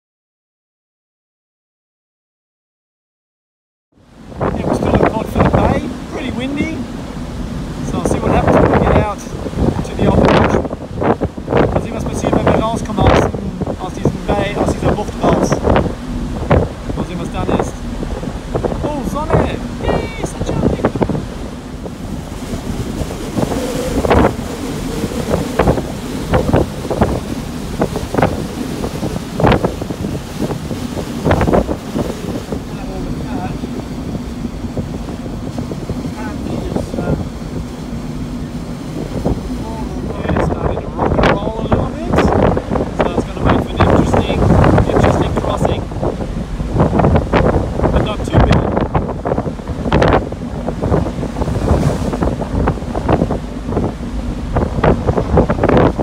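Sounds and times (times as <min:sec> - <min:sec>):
low hum from ship: 0:04.0 - 0:56.0
rush of churning wake: 0:04.0 - 0:56.0
wind buffeting microphone: 0:04.0 - 0:56.0.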